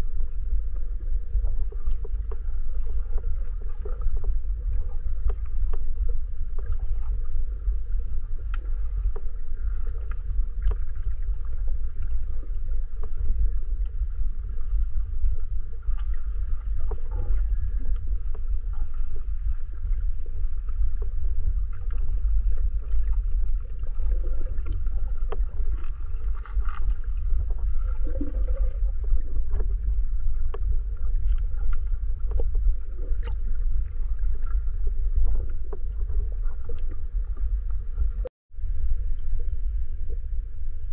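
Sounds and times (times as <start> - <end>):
muffled underwater rumble: 0.0 - 40.9.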